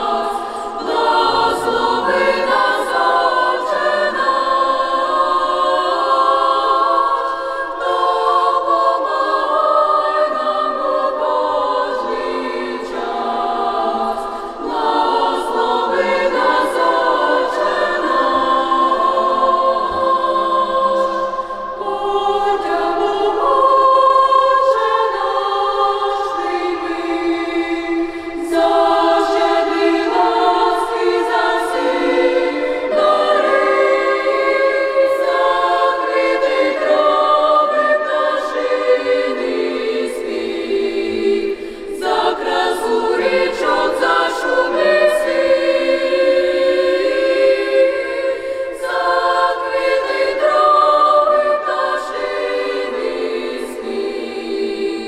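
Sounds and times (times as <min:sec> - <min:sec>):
girls choir singing a cappella: 0:00.0 - 0:55.0
singers breathing: 0:00.3 - 0:00.8, 0:14.1 - 0:14.8, 0:21.2 - 0:21.8, 0:27.9 - 0:28.5, 0:41.4 - 0:42.0, 0:48.4 - 0:48.8.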